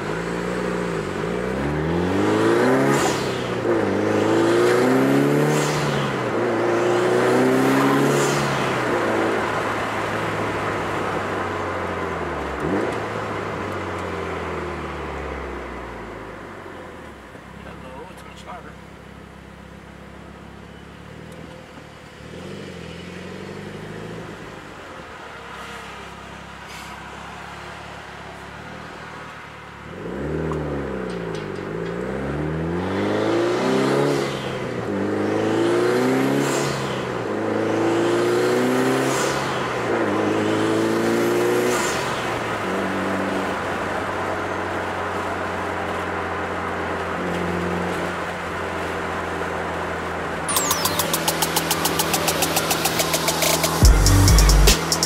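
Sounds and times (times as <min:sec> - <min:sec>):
car engine accelerating: 0:00.0 - 0:16.2, 0:47.0 - 0:55.0
gear change: 0:50.5 - 0:55.0.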